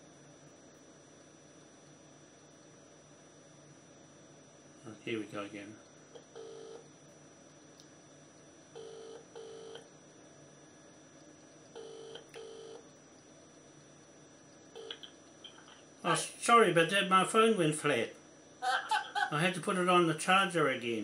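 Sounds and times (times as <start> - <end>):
telephone ringback tone: 6.4 - 6.8, 8.8 - 9.8, 11.8 - 12.8.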